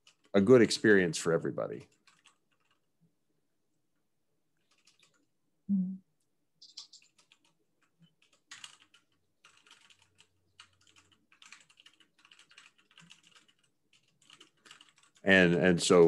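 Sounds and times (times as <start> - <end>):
faint keyboard typing: 0.0 - 3.1, 4.5 - 5.4, 6.6 - 16.0.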